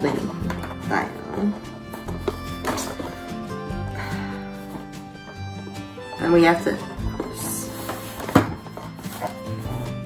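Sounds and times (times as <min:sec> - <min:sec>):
background music with held chords: 0:00.0 - 0:10.0.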